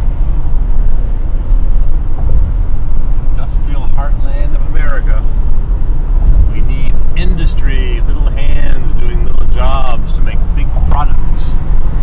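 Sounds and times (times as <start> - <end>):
road and engine rumble: 0.0 - 12.0
voices talking: 6.5 - 11.6.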